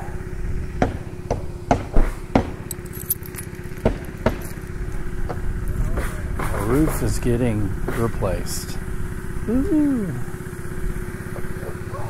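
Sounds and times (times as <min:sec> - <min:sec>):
tools knocking on roof deck: 0:00.8 - 0:02.7, 0:03.8 - 0:04.4.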